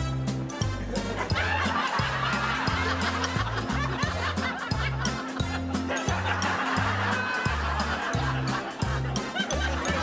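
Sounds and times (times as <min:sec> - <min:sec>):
music with repeating bass line: 0:00.0 - 0:10.0
laughter: 0:00.7 - 0:10.0.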